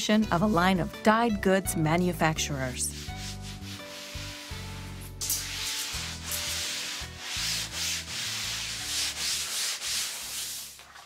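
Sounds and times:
rubbing strokes over cloth: 2.9 - 11.0.

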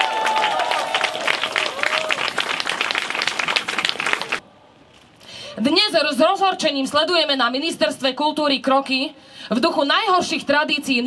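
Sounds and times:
crowd applauding: 0.0 - 4.4.

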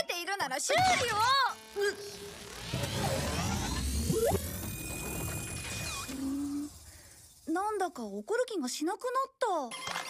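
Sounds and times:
rising electronic sweeps: 1.5 - 7.5.

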